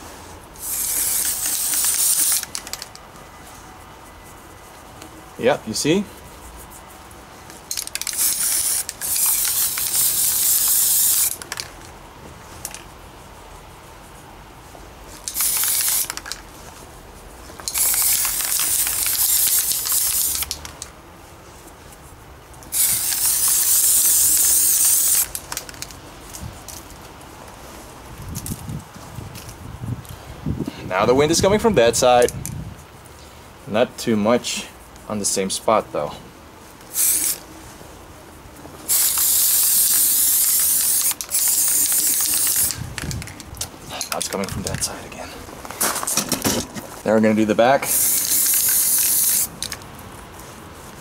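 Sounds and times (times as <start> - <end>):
spray-paint can hissing: 0.6 - 3.0, 7.6 - 11.7, 15.2 - 16.4, 17.6 - 20.9, 22.7 - 26.0, 36.9 - 37.5, 38.9 - 43.2, 47.8 - 49.8.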